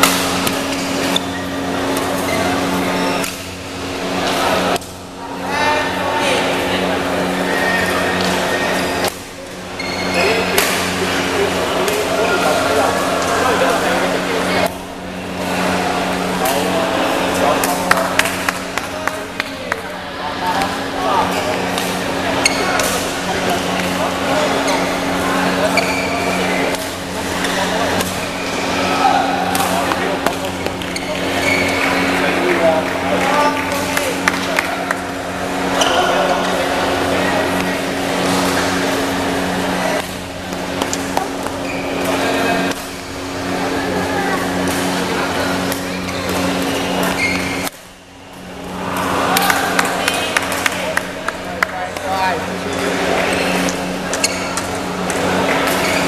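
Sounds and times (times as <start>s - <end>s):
rackets hitting shuttlecock: 0.0s - 1.3s, 10.1s - 11.0s, 29.4s - 32.1s, 40.0s - 43.5s
steady electrical hum: 0.0s - 56.0s
voices echoing in sports hall: 0.0s - 56.0s.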